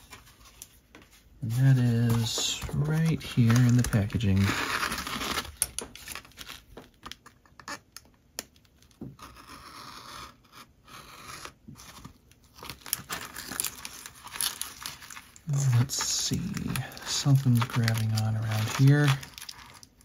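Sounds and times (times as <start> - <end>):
plastic packaging crinkling: 1.4 - 7.4, 12.0 - 20.0.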